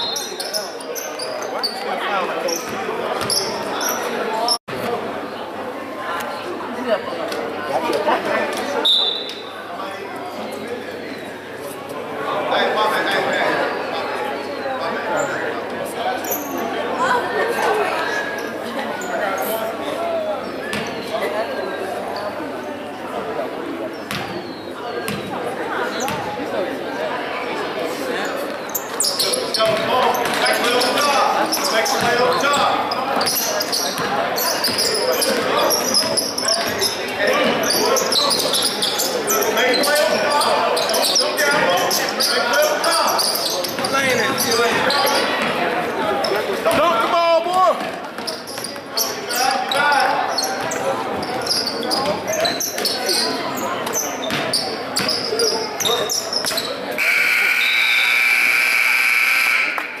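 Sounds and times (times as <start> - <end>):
voices echoing in hall: 0.0 - 60.0
scoreboard horn blast: 57.0 - 60.0.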